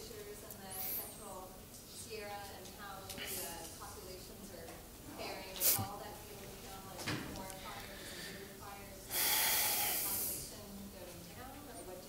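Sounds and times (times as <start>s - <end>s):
man breathing out hard: 9.1s - 10.2s.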